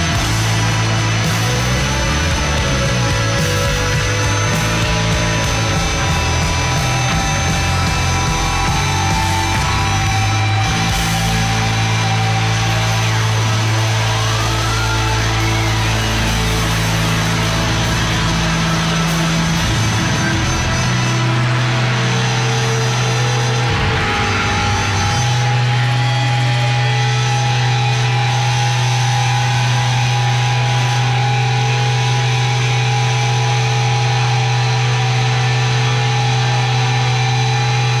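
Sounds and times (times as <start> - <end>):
electric guitar drone and feedback: 0.0 - 38.0.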